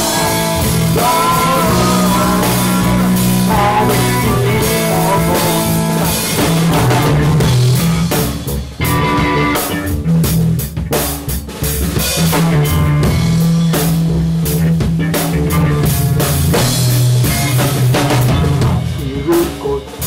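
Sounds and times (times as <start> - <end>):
drum kit: 0.0 - 20.0
electric bass: 0.0 - 20.0
electric guitar: 0.0 - 20.0.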